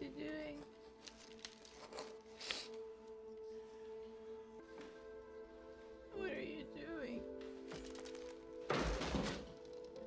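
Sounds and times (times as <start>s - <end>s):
orchestral film music: 0.0s - 10.0s.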